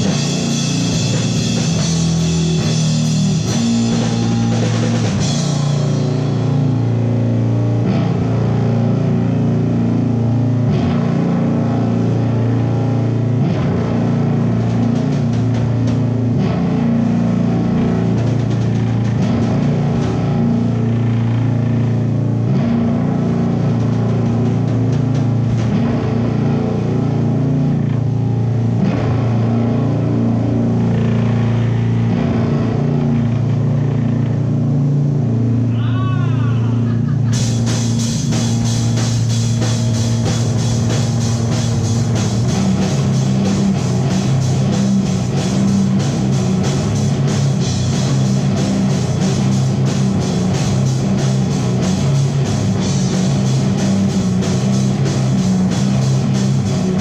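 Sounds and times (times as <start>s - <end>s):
sharp hits: 0.0s - 8.7s
electric guitar and bass droning: 0.0s - 57.0s.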